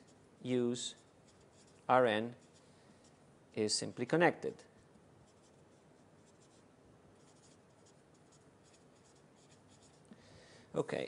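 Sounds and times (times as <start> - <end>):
faint writing scratches on a board: 0.0 - 3.2, 5.2 - 10.1.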